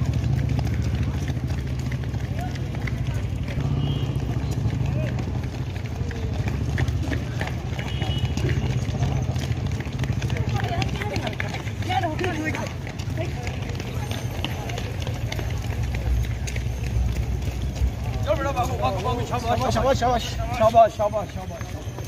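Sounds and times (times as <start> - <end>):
runners footsteps on asphalt: 0.0 - 22.0.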